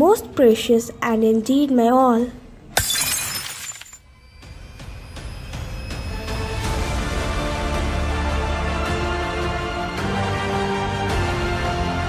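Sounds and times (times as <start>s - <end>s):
glass bottle shattering: 2.8s - 4.0s
glass pieces tinkling: 2.8s - 4.0s
soft music: 4.1s - 12.0s.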